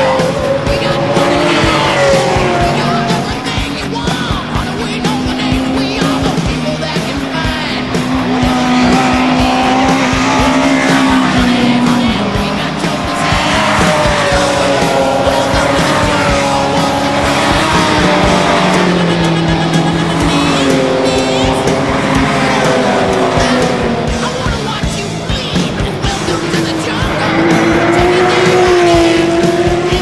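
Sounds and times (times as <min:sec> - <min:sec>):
music with steady beat: 0:00.0 - 0:30.0
racing car engines revving: 0:00.0 - 0:30.0.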